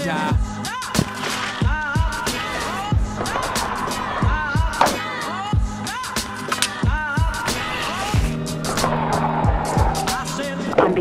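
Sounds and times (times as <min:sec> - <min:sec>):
hip-hop instrumental beat: 0:00.0 - 0:11.0.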